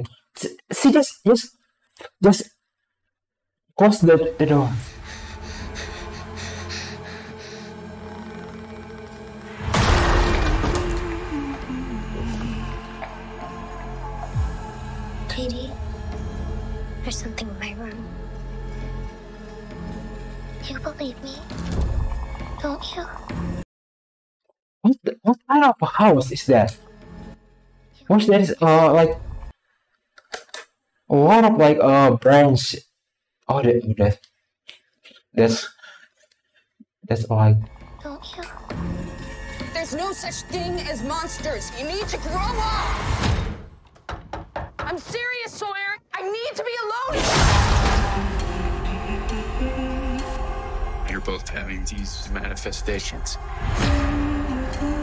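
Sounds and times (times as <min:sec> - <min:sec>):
low steady drone: 0:04.6 - 0:19.3, 0:47.8 - 0:55.0.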